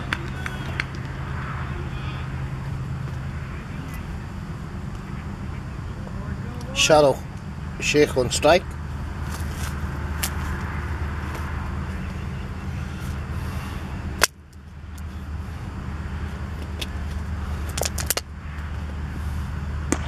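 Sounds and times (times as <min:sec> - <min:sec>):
quick run of clicks: 0:00.0 - 0:01.2
low background rumble: 0:00.0 - 0:20.0.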